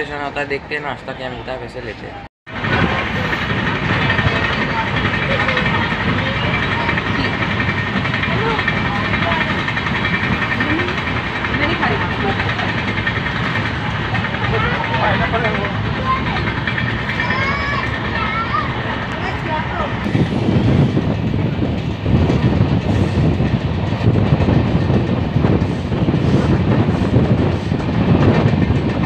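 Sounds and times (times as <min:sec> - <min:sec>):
faint voices: 0:01.5 - 0:21.7
train wheels on rails: 0:02.0 - 0:29.0
rushing air: 0:15.8 - 0:29.0.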